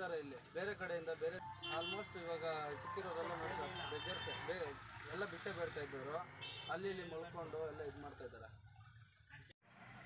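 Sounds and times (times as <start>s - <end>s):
man talking: 0.0s - 8.6s.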